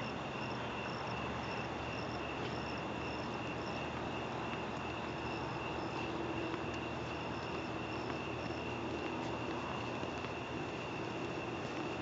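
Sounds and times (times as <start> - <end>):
crickets chirping: 0.0 - 12.0
low background hiss: 0.0 - 12.0.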